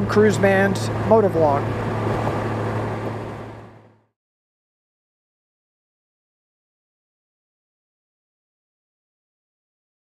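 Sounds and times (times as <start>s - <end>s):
motorcycle engine hum: 0.0s - 4.1s
wind and road noise: 0.0s - 4.1s.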